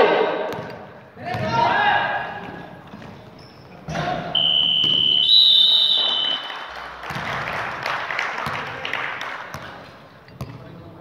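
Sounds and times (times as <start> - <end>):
players' voices: 1.0 - 6.6
shoes squeaking on gym floor: 2.6 - 5.2.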